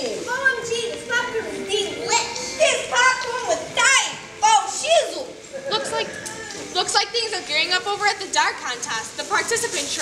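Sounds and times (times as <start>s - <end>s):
children calling out: 0.0s - 7.6s.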